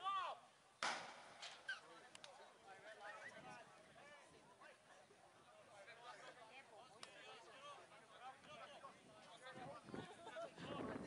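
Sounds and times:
sharp smack: 0.8 - 1.6.

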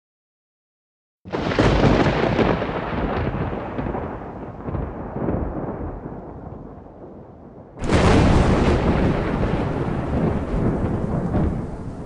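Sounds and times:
deep rumbling with crackles: 1.3 - 12.0.

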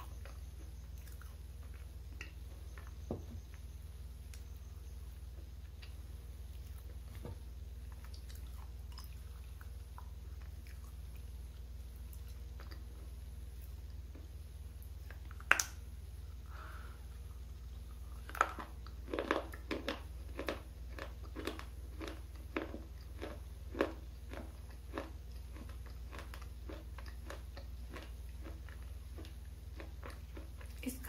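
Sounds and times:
crisp chewing crunches: 0.0 - 3.0, 7.8 - 15.8, 17.2 - 31.0.

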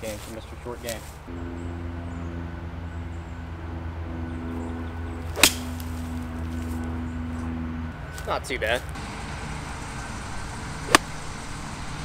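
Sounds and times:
low steady hum: 0.0 - 12.0
golf club striking ball: 5.2 - 6.2, 10.8 - 11.3.

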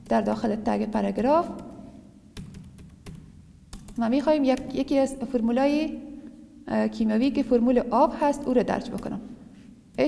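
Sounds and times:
computer keyboard keystrokes: 1.5 - 1.8, 2.4 - 4.0.

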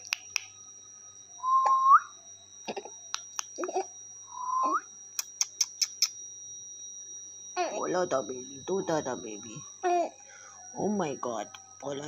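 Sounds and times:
whistled note sliding up: 4.3 - 4.8.

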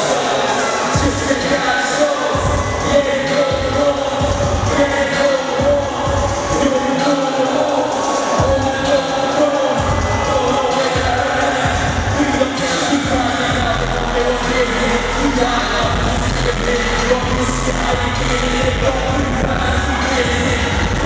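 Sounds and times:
hip-hop backing track: 0.0 - 21.0
person rapping into microphone: 0.0 - 21.0.

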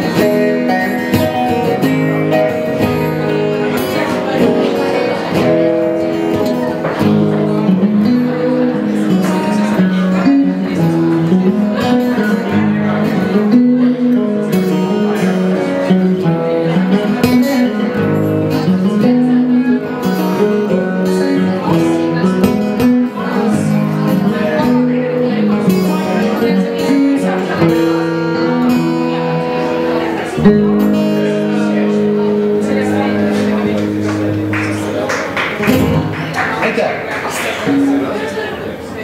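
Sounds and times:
acoustic guitar strumming: 0.0 - 39.0
electric guitar playing: 0.0 - 39.0.

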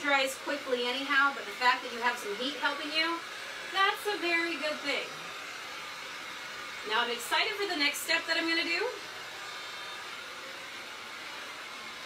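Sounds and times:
heat gun blowing: 0.0 - 12.0.

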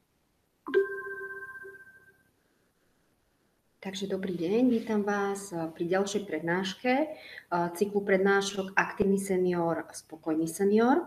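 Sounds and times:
struck chime note: 0.7 - 2.1.

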